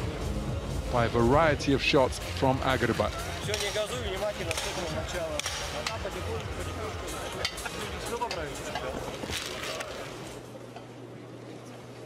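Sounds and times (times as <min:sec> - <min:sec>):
arena crowd chatter: 0:00.0 - 0:10.7.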